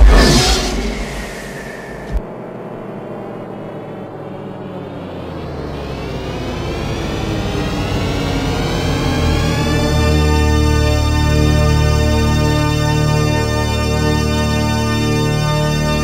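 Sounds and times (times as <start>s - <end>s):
low synth drone: 0.0s - 16.0s.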